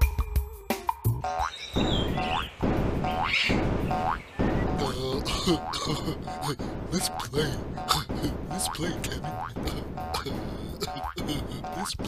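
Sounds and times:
springy boing tone: 3.1s - 12.0s.

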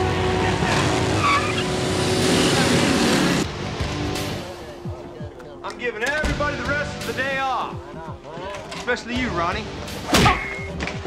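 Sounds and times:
car accelerating hard: 0.0s - 3.5s
tyres squealing: 0.4s - 3.0s
dramatic background music: 5.9s - 11.0s.

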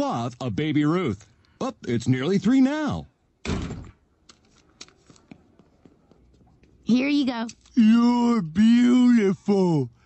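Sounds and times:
trapdoor heavy thunk: 3.4s - 4.0s.

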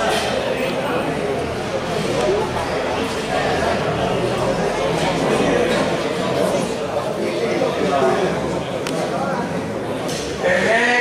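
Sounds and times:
spectators chattering: 0.0s - 11.0s.

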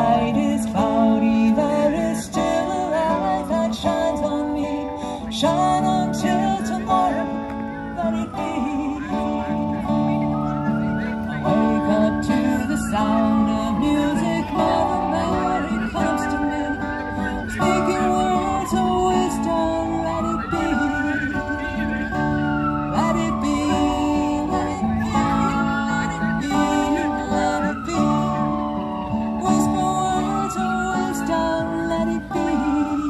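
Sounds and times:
acoustic guitar chords: 0.0s - 33.0s.

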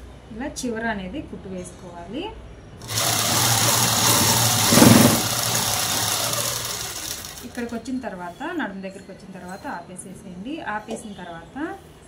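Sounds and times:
sewing machine running: 2.8s - 7.8s.

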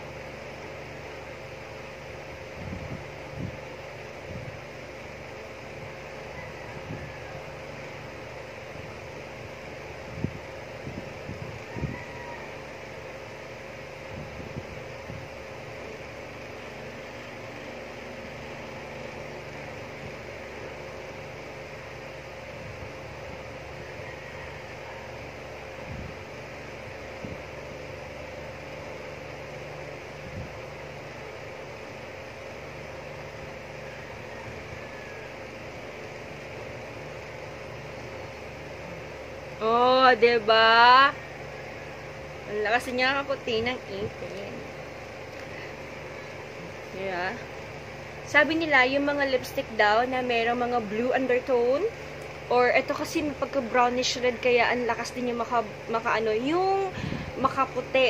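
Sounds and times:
fan-like hiss and hum: 0.0s - 58.0s.

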